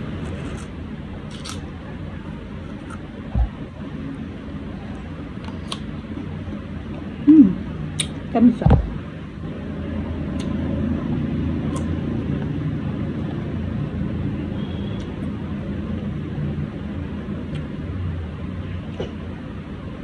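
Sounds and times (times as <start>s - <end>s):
low engine-like rumble: 0.0s - 20.0s.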